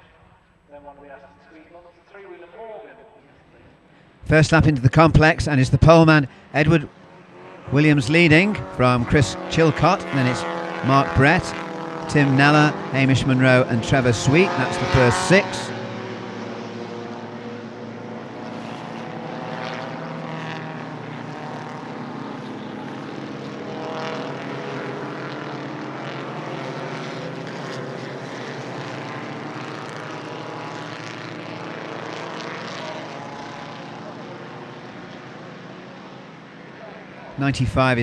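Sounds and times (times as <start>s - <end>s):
racing cars passing by: 0.0s - 38.0s.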